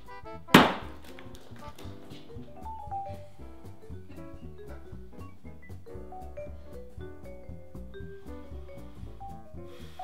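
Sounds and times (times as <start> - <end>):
light background music: 0.0 - 10.0
hand slamming into bowl: 0.6 - 1.1.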